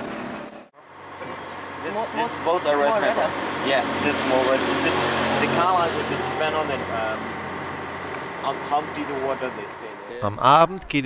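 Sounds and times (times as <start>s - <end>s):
motorcycle running and road noise: 0.0s - 10.2s
people's voices: 1.2s - 7.3s, 8.4s - 11.0s.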